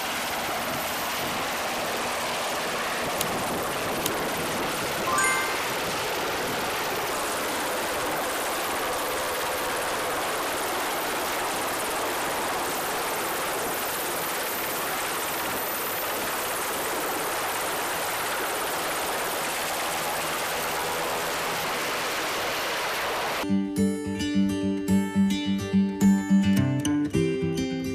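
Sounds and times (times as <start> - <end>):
helicopter rotor rushing: 0.0 - 23.4.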